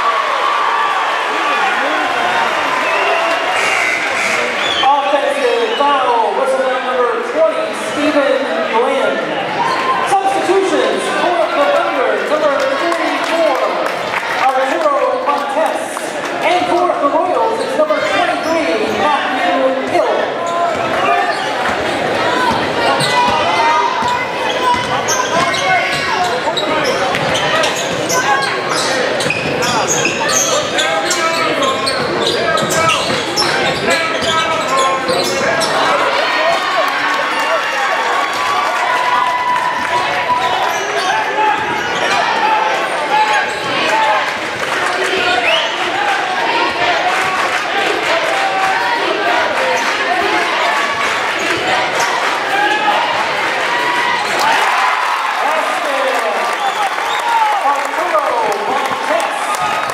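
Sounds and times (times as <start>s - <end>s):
crowd chatter: 0.0s - 59.9s.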